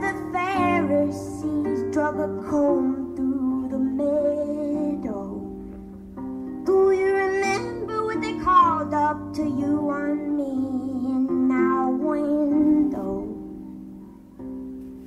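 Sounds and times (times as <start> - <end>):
woman singing: 0.0 - 5.7, 6.6 - 13.8.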